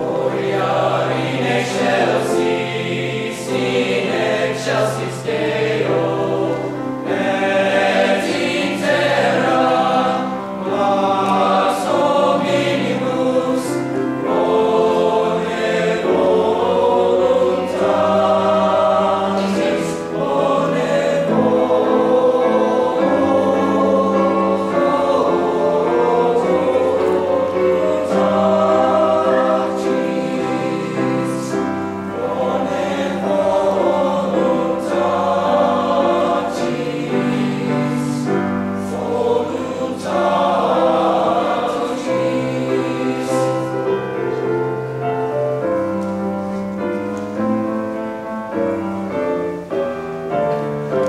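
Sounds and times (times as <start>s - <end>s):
men's choir singing: 0.0s - 44.9s
piano accompaniment: 0.0s - 51.0s.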